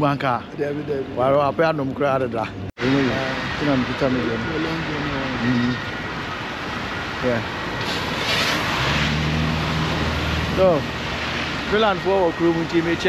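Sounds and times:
vehicle engine drone: 0.0s - 13.0s.

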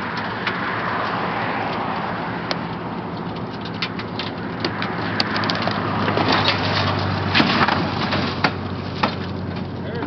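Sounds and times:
truck body crunching and scraping: 0.0s - 10.0s.

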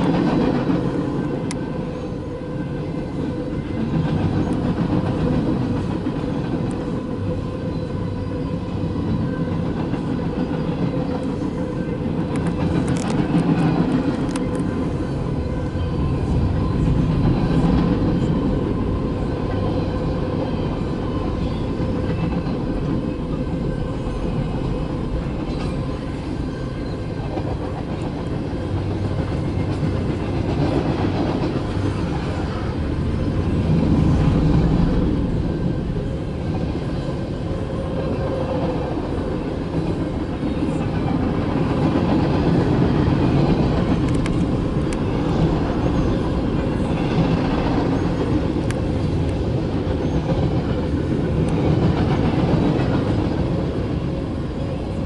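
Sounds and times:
train wheels rumbling on rails: 0.0s - 55.0s.

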